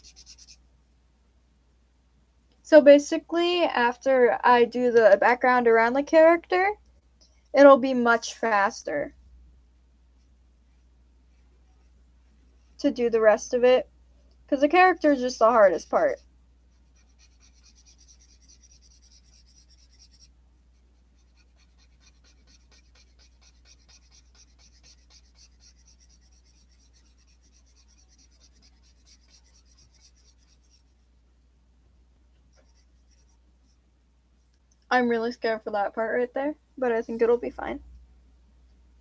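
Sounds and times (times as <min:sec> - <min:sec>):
marker scratching on paper: 0:00.0 - 0:00.6, 0:15.0 - 0:31.1, 0:32.5 - 0:33.4.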